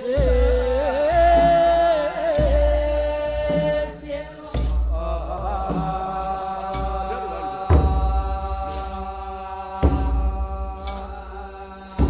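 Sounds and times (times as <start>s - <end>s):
voices chanting long note: 0.0s - 12.0s.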